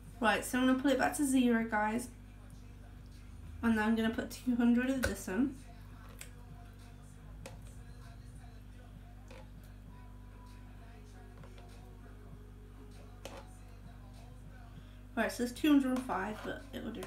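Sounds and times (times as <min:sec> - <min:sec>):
steady low hum: 0:00.0 - 0:17.0
spoon scraping plastic jug: 0:09.2 - 0:09.6, 0:11.4 - 0:11.8, 0:13.1 - 0:13.5, 0:15.8 - 0:17.0.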